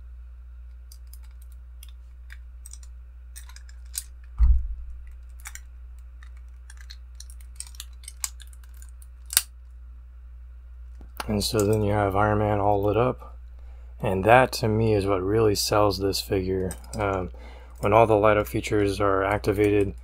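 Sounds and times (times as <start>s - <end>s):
dull low thump: 4.4s - 5.1s.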